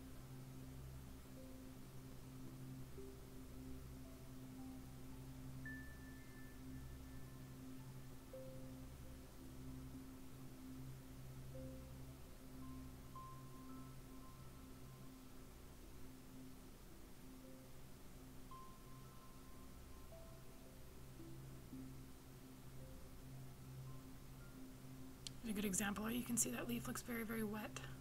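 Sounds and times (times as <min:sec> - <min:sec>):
low held drone: 0:00.0 - 0:28.0.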